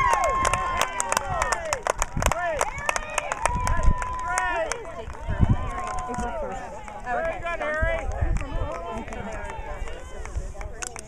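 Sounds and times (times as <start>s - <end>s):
spectators chatting: 0.0s - 11.0s.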